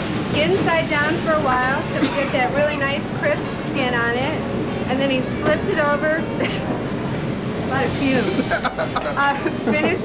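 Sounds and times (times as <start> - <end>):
person laughing: 8.4 - 10.0.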